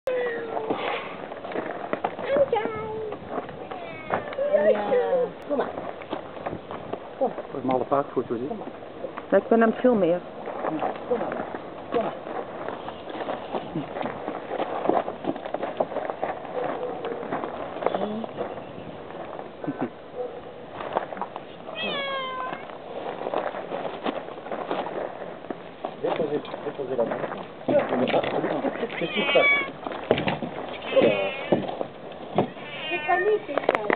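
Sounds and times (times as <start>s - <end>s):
cat meowing: 3.6s - 5.0s, 21.7s - 22.7s, 28.9s - 29.8s, 30.8s - 31.6s, 32.4s - 33.5s
handling knocks and rustles: 29.7s - 32.6s.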